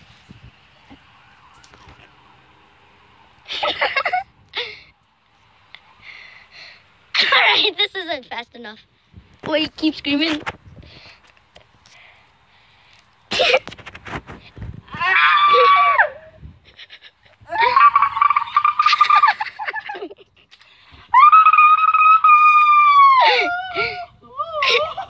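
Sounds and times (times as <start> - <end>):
person screaming: 14.9 - 16.2.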